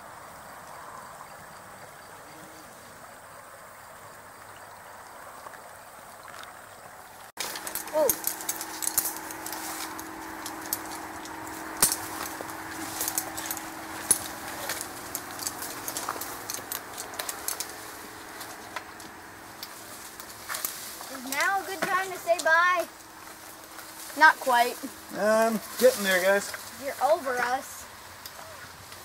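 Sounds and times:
person speaking: 0:07.4 - 0:08.4, 0:21.1 - 0:22.9, 0:24.2 - 0:27.8
climbing gear clicks and knocks: 0:07.4 - 0:24.2
faint steady hum: 0:07.4 - 0:29.0.

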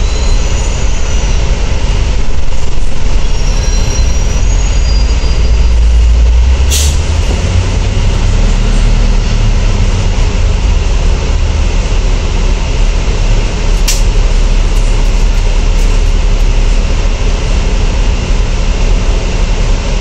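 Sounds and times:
thin high brake squeals: 0:00.0 - 0:01.6, 0:02.9 - 0:07.0
bus diesel engine rumble: 0:00.0 - 0:20.0.

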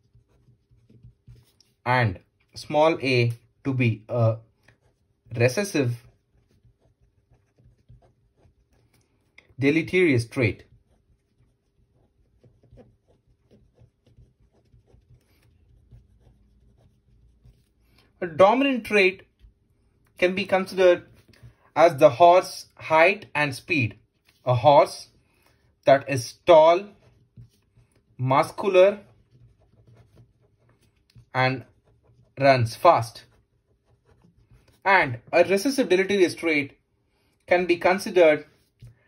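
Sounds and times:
pen writing on paper: 0:00.0 - 0:01.8, 0:04.5 - 0:09.4, 0:10.6 - 0:17.8, 0:28.9 - 0:32.4.

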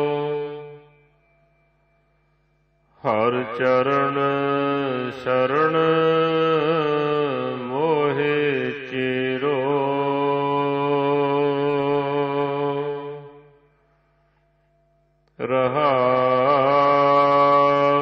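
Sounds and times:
ornamented sung line: 0:00.0 - 0:14.4, 0:15.0 - 0:18.0.

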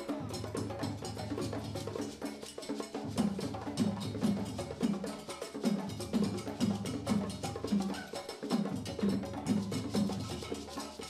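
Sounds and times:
hand drums playing fast rhythm: 0:00.0 - 0:11.0.

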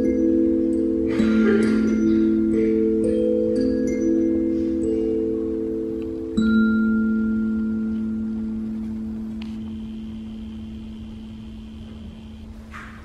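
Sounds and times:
singing bowl ringing: 0:00.0 - 0:12.5.

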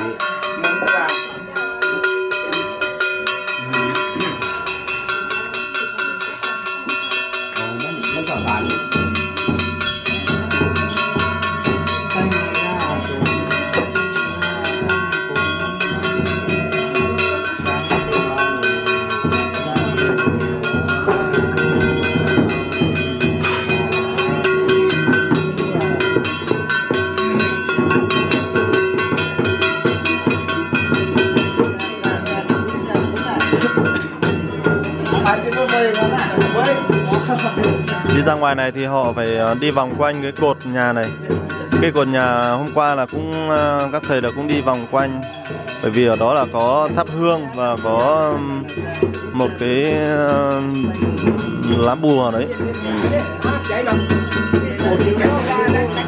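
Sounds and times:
drum beating: 0:00.0 - 0:56.0
ringing metal percussion: 0:00.0 - 0:56.0.

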